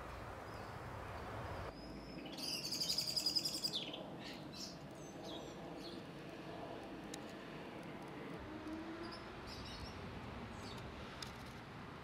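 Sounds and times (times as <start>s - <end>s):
bird chirps: 1.6s - 5.5s.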